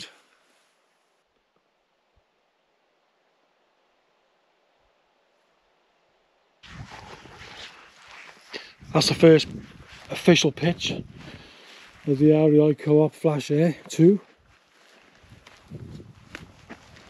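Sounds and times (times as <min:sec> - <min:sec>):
low rustling: 0:06.6 - 0:12.3.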